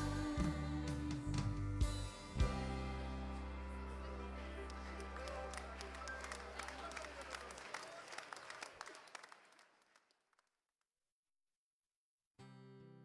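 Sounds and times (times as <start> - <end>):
worship song chord ringing: 2.1 - 7.2
applause: 4.1 - 10.6.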